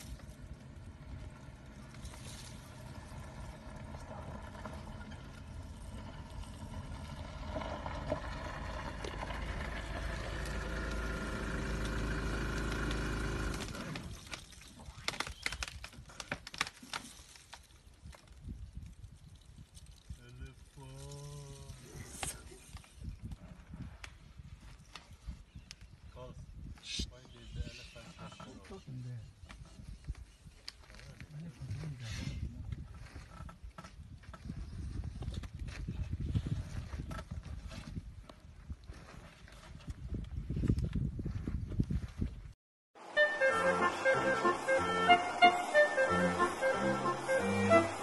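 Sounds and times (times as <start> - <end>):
vehicle engine idling: 0.0 - 13.9
branches cracking and snapping: 11.7 - 20.2.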